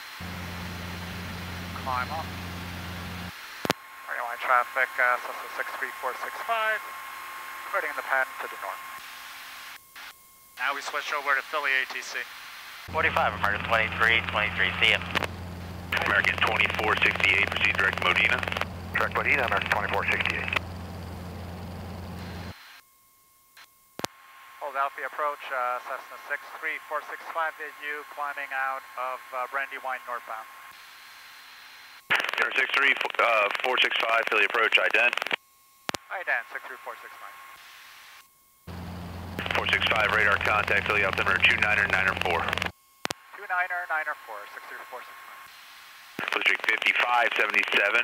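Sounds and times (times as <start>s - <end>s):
light aircraft engine drone: 0.0s - 8.8s, 12.9s - 22.6s, 38.7s - 42.7s.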